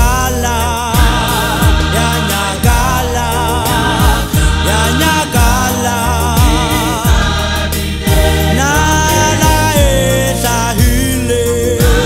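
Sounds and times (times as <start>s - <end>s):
gospel voices singing: 0.0s - 12.0s
steady bass line: 0.0s - 12.0s.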